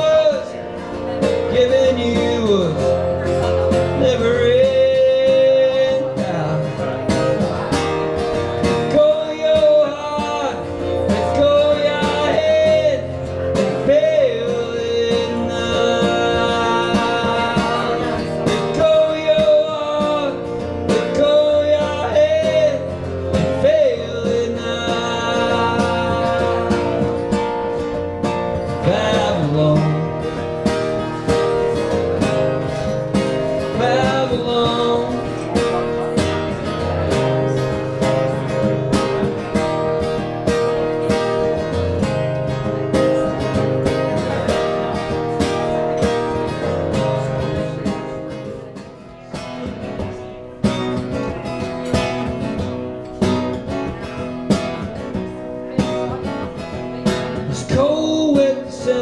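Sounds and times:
acoustic guitar strummed: 0.0 - 59.0
man singing: 0.0 - 59.0.

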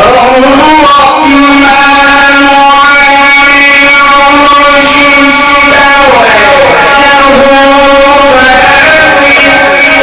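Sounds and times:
man reciting through microphone: 0.0 - 10.0.

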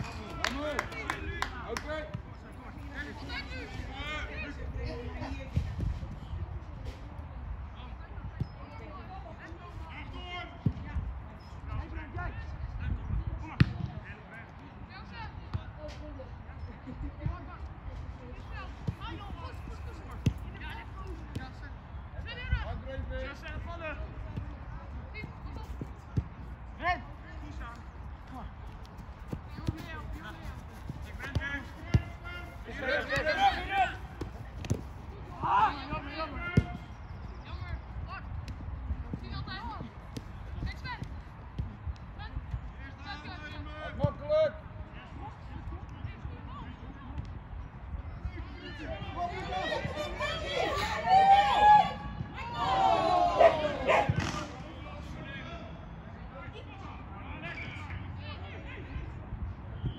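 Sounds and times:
players shouting: 29.6 - 36.9, 48.8 - 54.6.

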